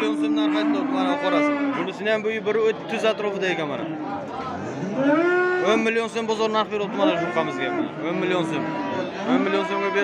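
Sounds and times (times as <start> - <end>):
cattle mooing: 0.0 - 2.0, 4.6 - 5.9, 6.8 - 10.0.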